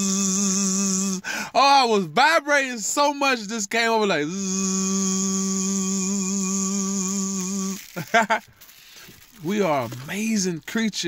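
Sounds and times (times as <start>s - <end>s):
man humming low note: 0.0s - 1.3s, 4.3s - 8.0s.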